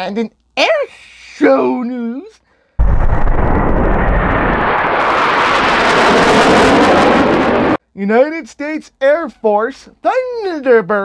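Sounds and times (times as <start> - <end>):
jet passing overhead: 2.8 - 7.8.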